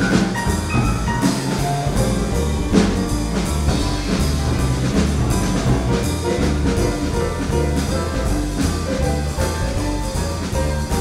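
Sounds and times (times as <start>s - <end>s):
drum kit played with sticks: 0.0s - 11.0s
grand piano: 0.0s - 11.0s
plucked double bass: 0.0s - 11.0s.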